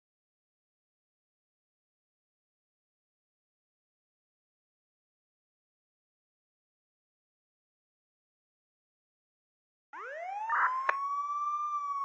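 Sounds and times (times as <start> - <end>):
siren wail: 10.0 - 12.0.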